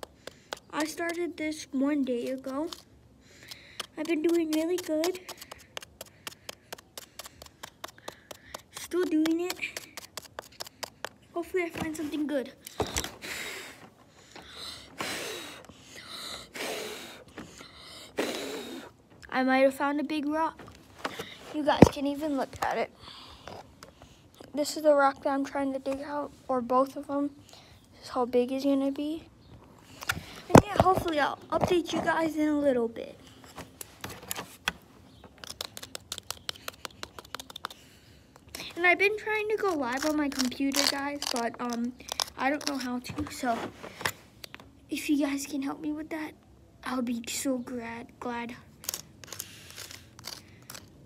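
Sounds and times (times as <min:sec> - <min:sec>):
person breathing hard: 0:03.2 - 0:04.0, 0:05.2 - 0:08.8, 0:12.6 - 0:19.0.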